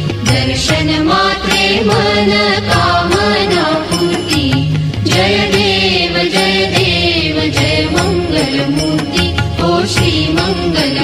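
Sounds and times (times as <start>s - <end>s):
devotional music: 0.0s - 11.0s
percussion beat: 0.0s - 11.0s.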